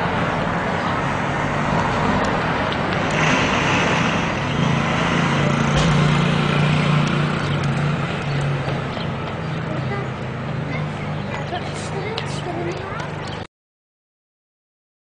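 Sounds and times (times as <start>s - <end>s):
street traffic: 0.0s - 13.5s
vehicle engine humming: 0.0s - 13.5s.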